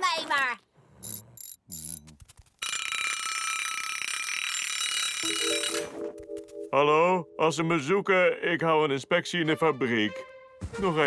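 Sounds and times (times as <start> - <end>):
alarm clock bells ringing: 2.6 - 6.8.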